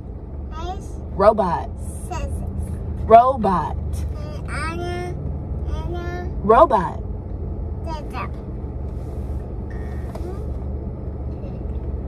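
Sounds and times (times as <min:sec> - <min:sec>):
car cabin hum: 0:00.0 - 0:12.0
young child's voice: 0:00.5 - 0:01.0, 0:02.0 - 0:02.5, 0:04.0 - 0:06.4, 0:07.8 - 0:08.4, 0:10.1 - 0:10.6.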